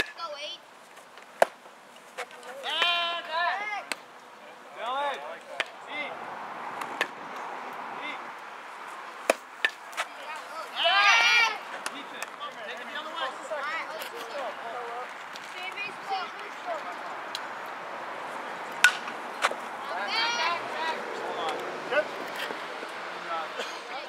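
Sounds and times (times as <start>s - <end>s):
high-pitched shouts: 10.7s - 11.6s, 20.0s - 20.7s
baseball knocks: 18.7s - 19.6s.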